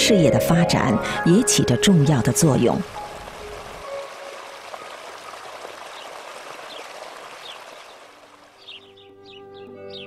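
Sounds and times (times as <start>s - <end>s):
flowing water rushing: 1.5s - 9.0s.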